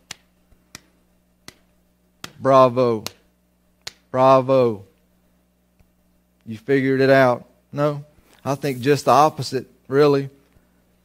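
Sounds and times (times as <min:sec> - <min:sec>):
slow hand claps: 0:00.0 - 0:02.4, 0:03.0 - 0:04.1.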